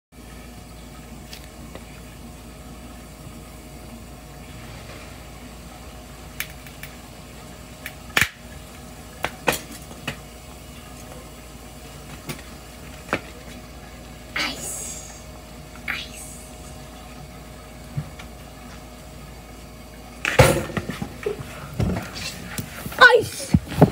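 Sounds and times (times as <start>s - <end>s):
steady low hum: 0.2s - 23.9s.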